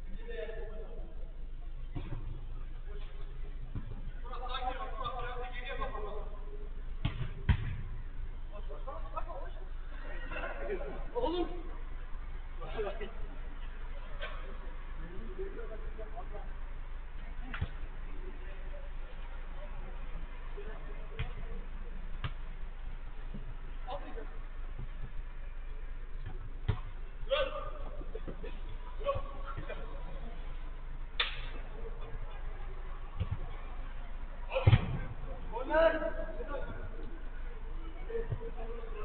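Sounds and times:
faint distant voices: 0:00.0 - 0:39.0
steady low hum: 0:00.0 - 0:39.0
football being struck: 0:07.0 - 0:08.0, 0:26.2 - 0:26.9, 0:33.2 - 0:33.5, 0:34.5 - 0:35.2.

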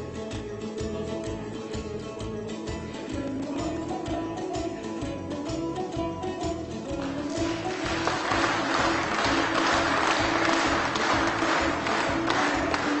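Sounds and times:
music with low beat: 0:00.0 - 0:13.0
audience applause: 0:07.0 - 0:13.0.

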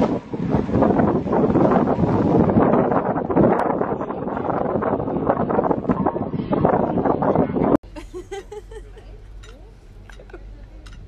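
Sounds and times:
wind buffeting microphone: 0:00.0 - 0:07.8.

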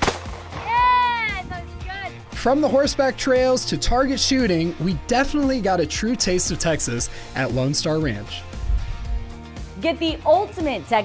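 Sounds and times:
shotgun shot: 0:00.0 - 0:00.7
background music: 0:00.0 - 0:11.0.

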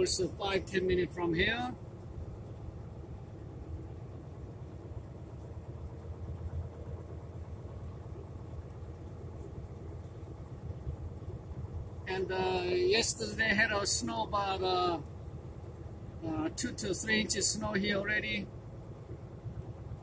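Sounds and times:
truck engine rumbling: 0:00.0 - 0:20.0.

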